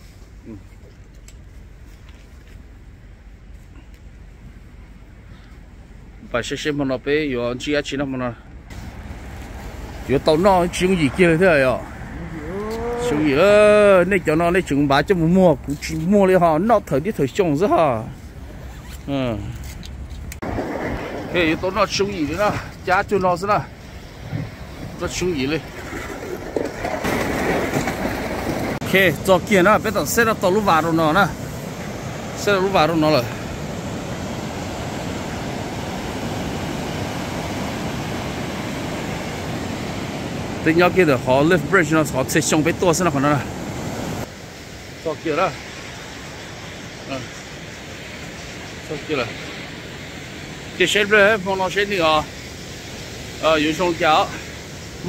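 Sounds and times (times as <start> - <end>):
small waves on shore: 8.7 - 19.4, 20.4 - 55.0
man speaking: 10.1 - 18.2, 19.1 - 19.6, 40.6 - 43.5
wind rushing: 20.4 - 23.0.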